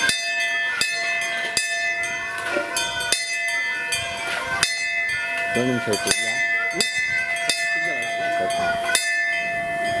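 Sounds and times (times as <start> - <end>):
metal bell ringing: 0.0 - 10.0.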